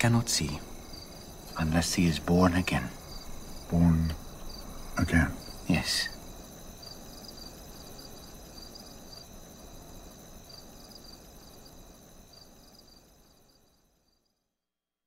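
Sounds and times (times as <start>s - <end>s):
crickets chirping: 0.0s - 14.7s.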